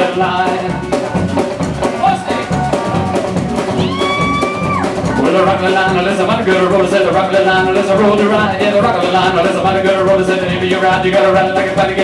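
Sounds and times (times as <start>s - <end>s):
drum kit beat: 0.0s - 12.0s
electric guitar: 0.0s - 12.0s
upright bass: 0.0s - 12.0s.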